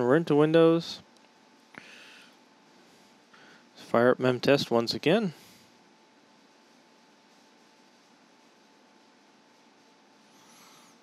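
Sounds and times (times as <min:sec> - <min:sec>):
thin steady tone: 0:01.5 - 0:11.0.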